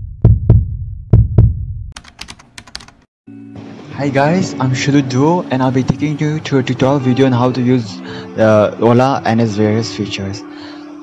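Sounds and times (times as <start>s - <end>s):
deep double thump: 0.0s - 1.9s
quick sharp clicks: 2.0s - 3.1s.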